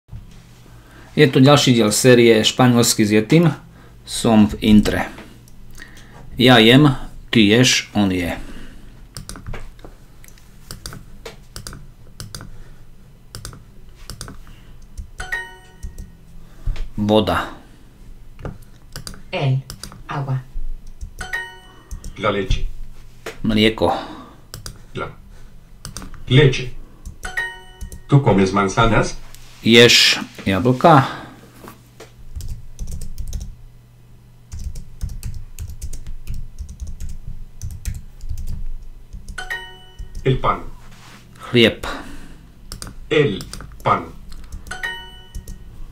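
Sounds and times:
computer mouse clicking: 9.1 - 12.6, 13.3 - 15.2, 18.4 - 20.0, 20.8 - 21.2, 24.5 - 24.8, 25.8 - 26.2, 34.5 - 39.4, 42.7 - 45.6
keyboard typing: 9.1 - 12.6, 13.3 - 16.2, 18.4 - 20.0, 20.8 - 22.2, 24.5 - 24.8, 25.8 - 26.2, 27.0 - 28.1, 32.3 - 33.6, 34.5 - 40.4, 42.7 - 45.6
bright multi-tone ding: 15.2 - 16.0, 21.2 - 21.9, 27.2 - 28.1, 39.4 - 40.2, 44.7 - 45.5.

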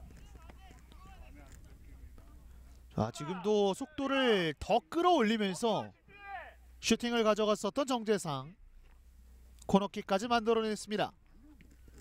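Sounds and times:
distant players calling out: 0.0 - 6.8.

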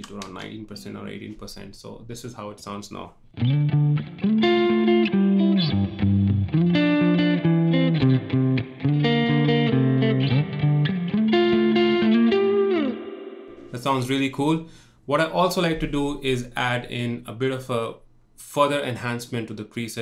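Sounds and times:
clean electric guitar notes: 3.4 - 13.8.

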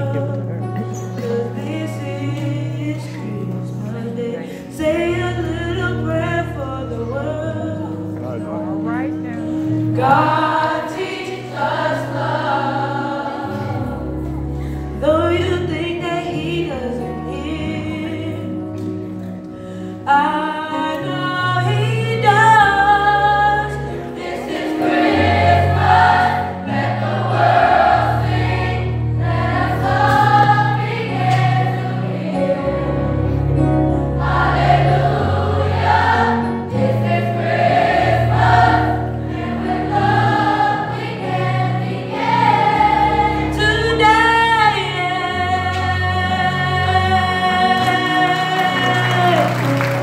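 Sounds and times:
youth choir singing: 9.9 - 14.5, 22.2 - 50.0.

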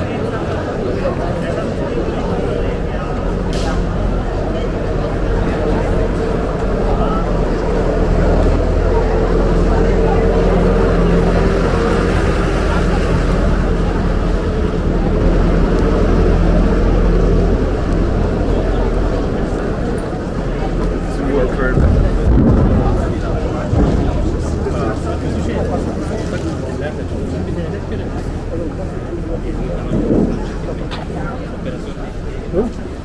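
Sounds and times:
footsteps of passers-by: 0.0 - 33.0
passers-by talking: 0.0 - 33.0.

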